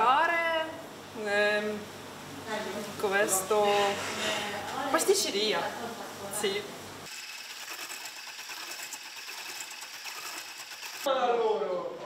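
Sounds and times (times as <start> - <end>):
electric whisk whirring in bowl: 7.1 - 11.1.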